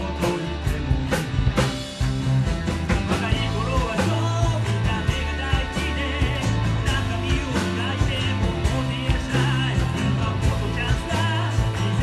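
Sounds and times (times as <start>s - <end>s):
drum kit beat: 0.0s - 12.0s
electric bass: 0.0s - 12.0s.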